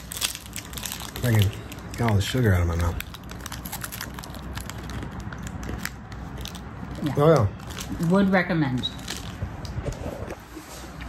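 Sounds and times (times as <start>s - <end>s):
person chewing crunchy candy: 0.0s - 8.0s.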